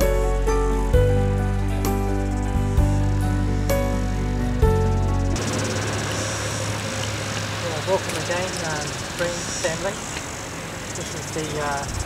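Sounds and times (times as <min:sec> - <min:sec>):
music: 0:00.0 - 0:05.4.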